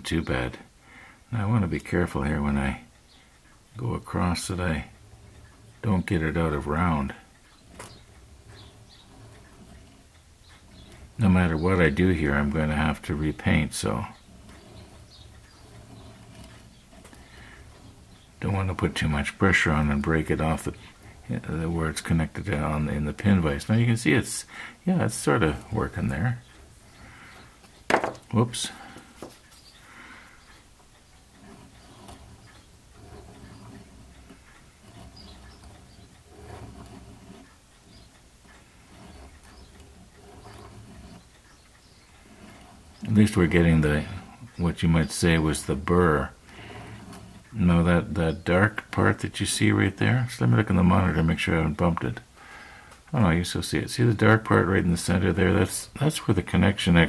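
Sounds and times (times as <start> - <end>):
sanding stick scratching plastic: 7.6 - 23.9, 31.2 - 49.6.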